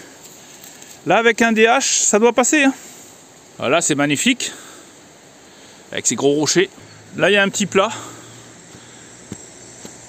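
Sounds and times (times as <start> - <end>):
footsteps on leafy dirt path: 0.0 - 1.1, 6.7 - 10.0
high-pitched hiss: 0.0 - 10.0.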